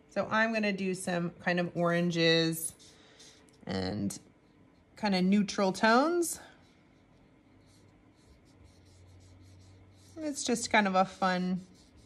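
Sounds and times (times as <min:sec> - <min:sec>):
steady low hum: 0:00.0 - 0:12.0
paintbrush brushing on paper: 0:02.1 - 0:03.7, 0:04.4 - 0:12.0.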